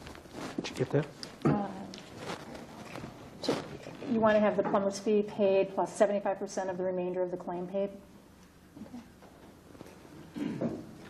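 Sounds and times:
shuffling and rustling: 0.0 - 4.2.

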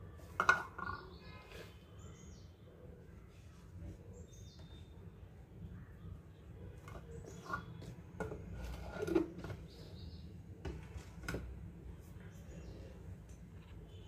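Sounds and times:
faint bird chirps: 12.2 - 14.0.

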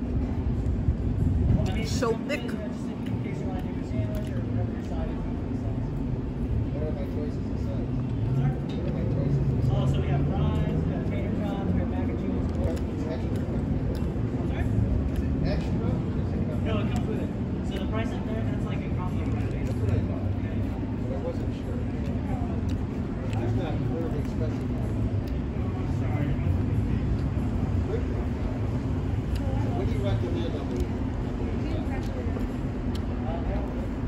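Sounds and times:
distant people talking: 0.0 - 34.0
steady low rumble: 0.0 - 34.0.

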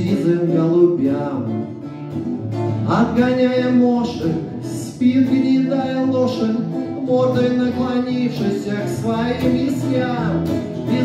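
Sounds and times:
man singing: 0.0 - 1.9, 2.8 - 11.0
acoustic guitar: 0.0 - 11.0.

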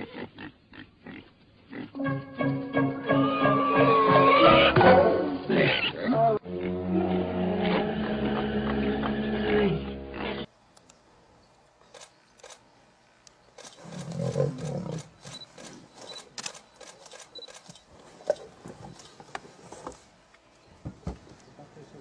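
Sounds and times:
background music with sustained notes: 2.0 - 5.5
faint scattered clicks: 10.7 - 19.4
lion growling and roaring: 13.8 - 15.1.

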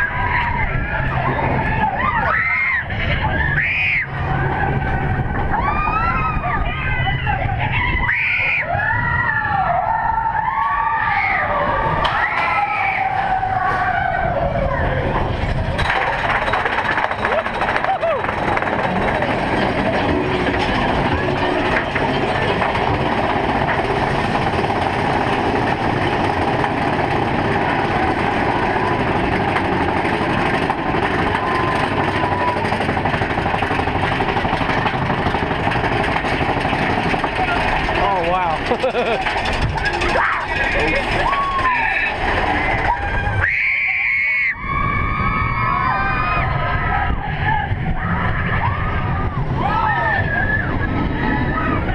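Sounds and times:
riders yelling and whooping: 0.0 - 22.2, 27.5 - 33.2, 36.6 - 51.9
roller coaster rumble and clatter: 0.0 - 51.9.

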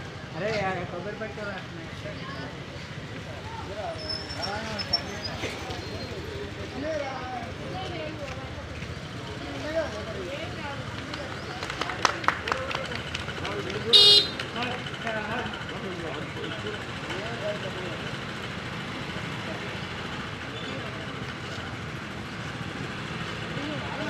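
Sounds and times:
high-pitched vehicle horn toot: 13.9 - 14.4.

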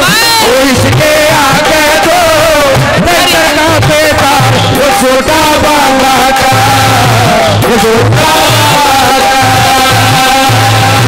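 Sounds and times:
steady low beat: 0.4 - 11.0.

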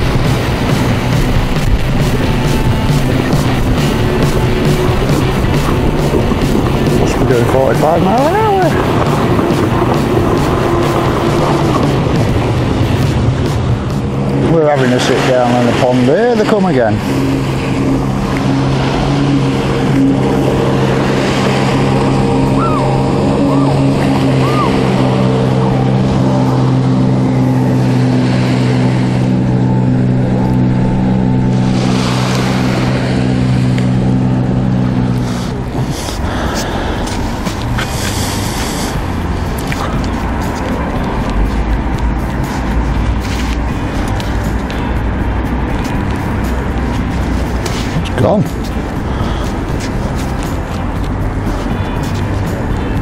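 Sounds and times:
jet ski engines droning: 0.0 - 53.0
water wash: 0.0 - 53.0.

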